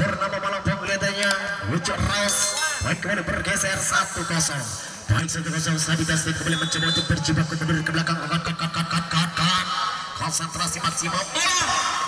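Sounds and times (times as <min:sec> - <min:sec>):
man talking: 0:00.0 - 0:11.8.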